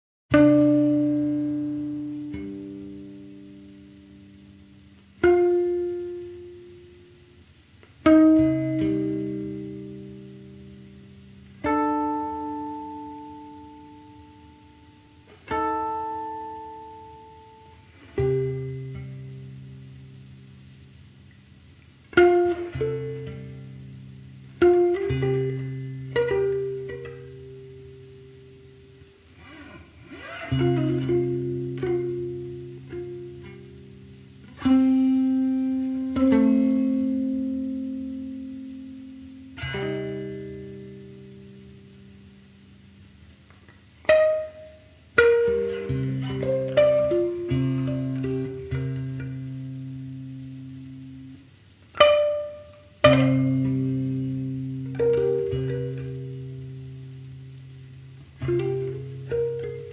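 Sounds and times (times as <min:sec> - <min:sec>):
guitar playing slow chords: 0:00.3 - 0:59.9.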